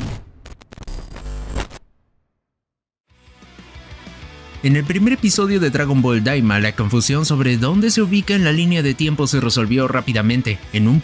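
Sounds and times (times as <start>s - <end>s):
glitch electronic noise burst: 0.0s - 1.9s.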